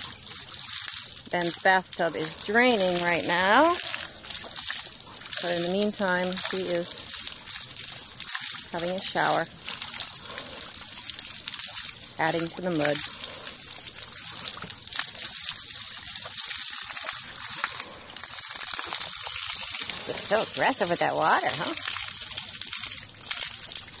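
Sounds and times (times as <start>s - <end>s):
hose water hissing and splashing: 0.0s - 24.0s
water spattering into a bucket: 0.0s - 24.0s.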